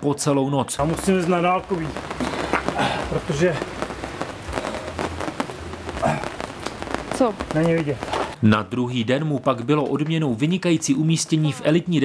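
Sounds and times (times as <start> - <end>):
man speaking: 0.0 - 2.0, 2.8 - 3.7, 7.5 - 12.0
rain pattering on hard surface: 0.1 - 12.0.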